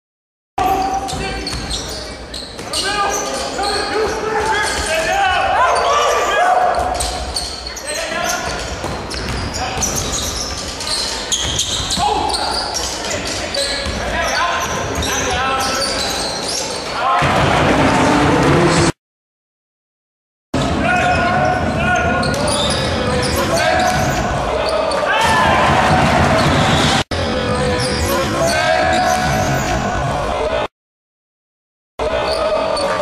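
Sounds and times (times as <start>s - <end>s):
crowd calling and shouting: 0.6s - 19.0s, 20.6s - 30.7s, 32.0s - 33.0s
basketball bouncing on court: 8.8s - 10.4s.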